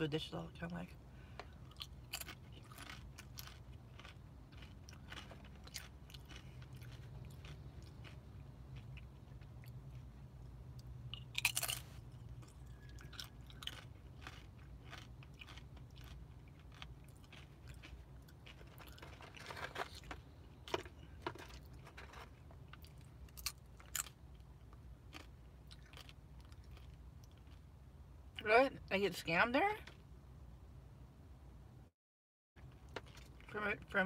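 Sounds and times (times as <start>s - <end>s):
person chewing crunchy chips: 1.4s - 27.9s, 32.6s - 33.5s.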